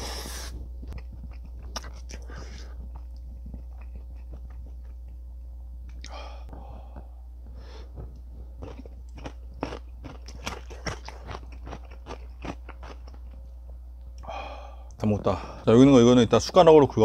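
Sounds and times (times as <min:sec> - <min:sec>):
crunchy chewing: 0:00.1 - 0:05.2, 0:07.8 - 0:13.6.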